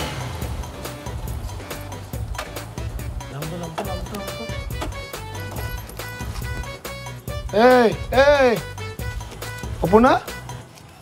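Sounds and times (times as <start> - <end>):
steady percussive beat: 0.0 - 10.5.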